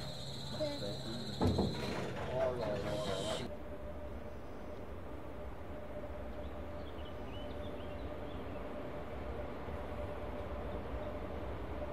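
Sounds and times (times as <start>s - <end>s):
electric locomotive humming: 0.0s - 11.9s
low thump: 1.4s - 2.1s.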